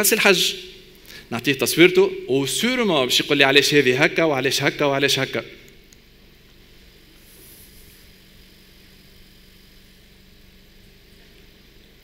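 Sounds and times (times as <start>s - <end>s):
faint low hum: 0.0s - 12.0s
steady hiss: 0.0s - 12.0s.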